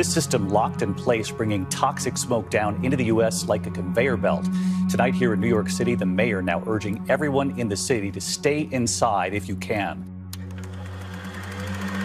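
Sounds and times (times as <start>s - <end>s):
voice: 0.0s - 10.0s
steady low drone: 0.0s - 12.0s
fast ticking whir: 10.4s - 12.0s.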